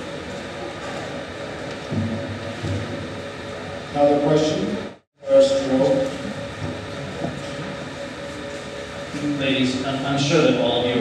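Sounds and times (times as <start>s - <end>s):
low room rumble and hiss: 0.0s - 11.0s.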